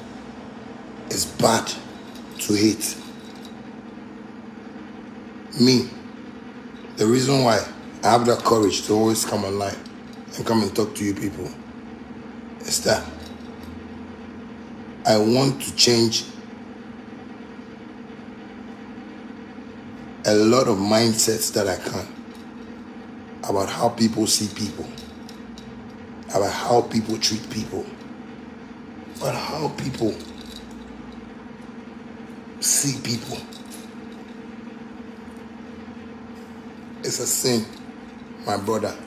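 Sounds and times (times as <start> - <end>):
constant low drone: 0.0 - 16.6, 19.5 - 39.0
steady low hum: 0.0 - 39.0.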